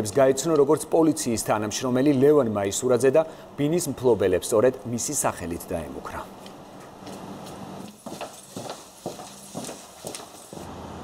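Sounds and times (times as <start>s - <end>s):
footsteps on stone stairs: 6.3s - 10.7s.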